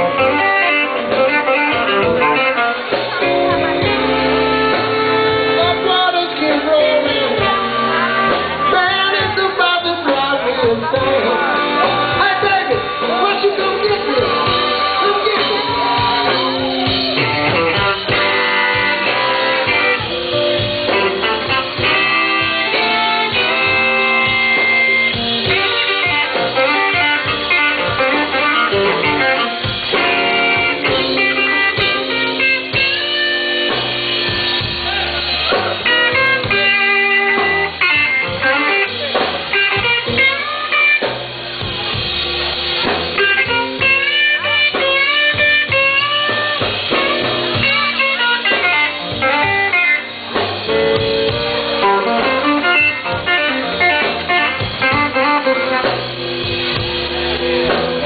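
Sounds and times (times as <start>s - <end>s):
electric guitar with bent notes: 0.0s - 58.0s
live electric blues band: 0.0s - 58.0s.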